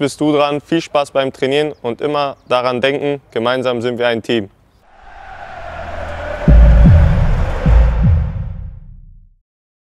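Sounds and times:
whoosh: 0:04.9 - 0:09.3
deep bass thumps: 0:06.4 - 0:09.2.

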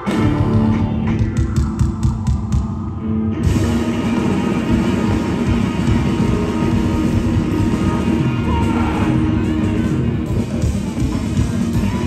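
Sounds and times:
live band playing loudly: 0:00.0 - 0:12.0.

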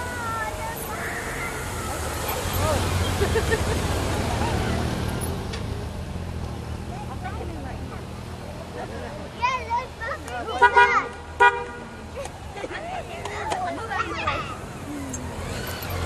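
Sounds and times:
motorcycle engines rumbling: 0:00.0 - 0:16.0.

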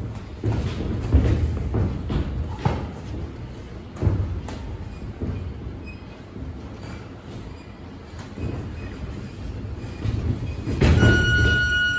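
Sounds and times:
footwork thudding on ring floor: 0:00.0 - 0:05.8.

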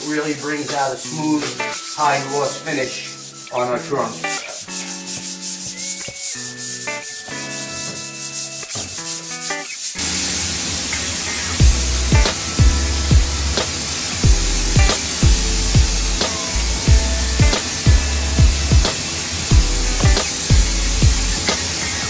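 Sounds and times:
background music with held notes: 0:00.0 - 0:22.0
loud steady hiss: 0:00.0 - 0:22.0
sandpaper rubbing on wood: 0:00.0 - 0:22.0
music with heavy bass beat: 0:11.6 - 0:21.8.

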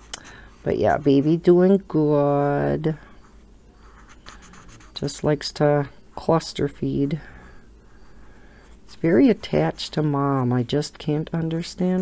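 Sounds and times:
marker scratching on paper: 0:03.8 - 0:05.2.

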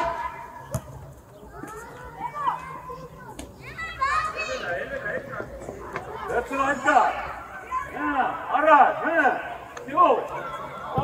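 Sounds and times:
young footballers shouting: 0:01.6 - 0:11.0.

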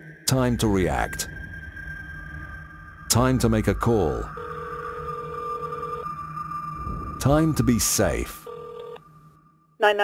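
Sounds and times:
low hum: 0:00.0 - 0:09.7
telephone ringing tone: 0:04.3 - 0:06.2, 0:08.3 - 0:09.0.

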